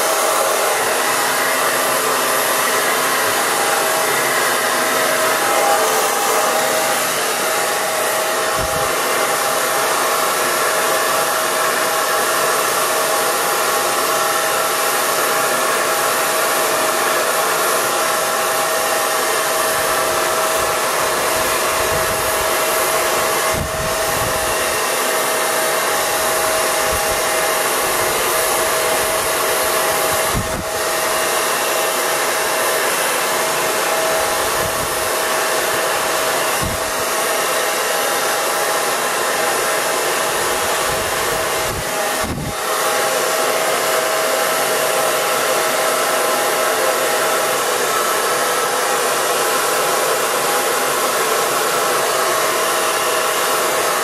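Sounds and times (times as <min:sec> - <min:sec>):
hair dryer blowing: 0:00.0 - 0:54.0.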